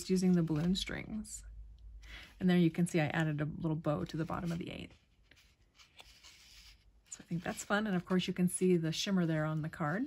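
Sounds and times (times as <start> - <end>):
card rustling in hands: 0.0 - 1.0, 4.0 - 10.0.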